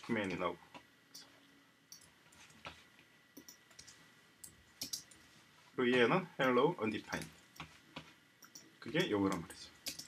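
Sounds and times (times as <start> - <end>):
computer mouse clicks: 1.9 - 5.2, 7.1 - 10.0.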